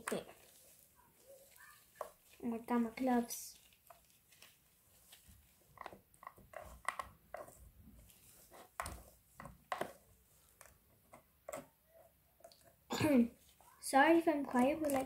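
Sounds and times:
plastic spatula scraping and tapping: 0:00.0 - 0:13.8, 0:14.4 - 0:15.0.

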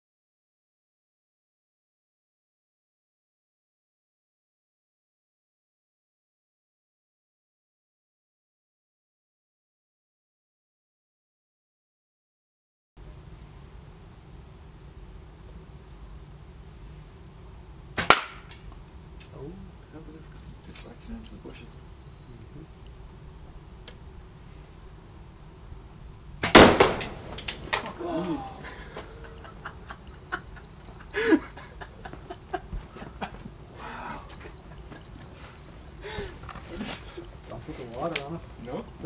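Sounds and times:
small flames burning: 0:13.1 - 0:39.0
arrow striking plastic bottle: 0:18.0 - 0:18.5, 0:26.4 - 0:28.0
bow string snap: 0:18.0 - 0:18.6
fire crackling and popping: 0:26.4 - 0:29.1, 0:34.2 - 0:39.0
short vocal sound: 0:27.9 - 0:28.9.

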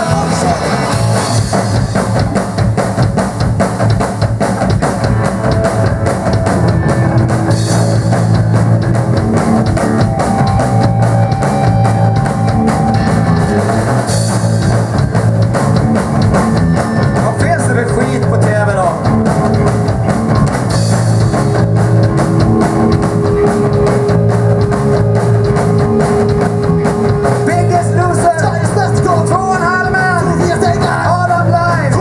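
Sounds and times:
bass guitar: 0:00.0 - 0:32.0
drum kit steady beat: 0:00.0 - 0:32.0
electric guitar: 0:00.0 - 0:32.0.

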